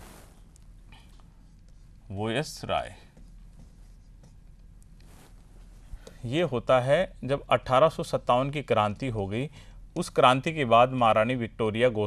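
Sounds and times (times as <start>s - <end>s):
stylus scratching on glass screen: 0.0s - 6.4s.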